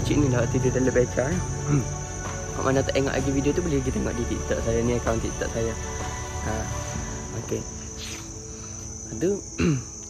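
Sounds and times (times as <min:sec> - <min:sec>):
insect trill: 0:00.0 - 0:10.0
soft background music: 0:00.0 - 0:10.0.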